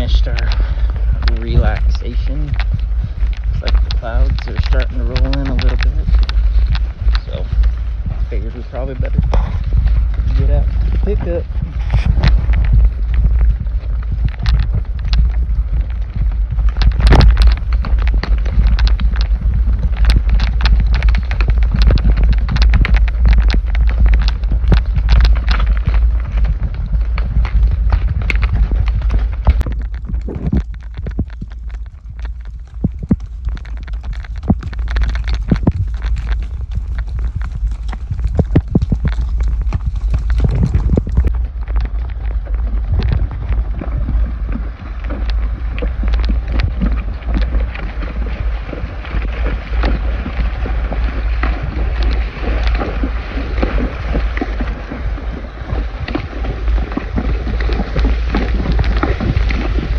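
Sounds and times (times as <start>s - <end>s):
horse hooves clopping on trail: 0.0s - 59.9s
wind rumble on microphone: 0.0s - 59.9s.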